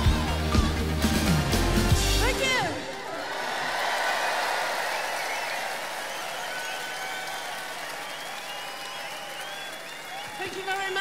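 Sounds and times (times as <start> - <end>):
crowd applauding and cheering: 0.0 - 11.0.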